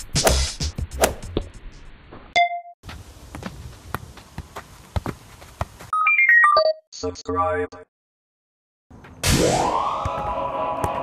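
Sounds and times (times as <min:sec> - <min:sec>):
football touches on foot: 0:02.9 - 0:05.9.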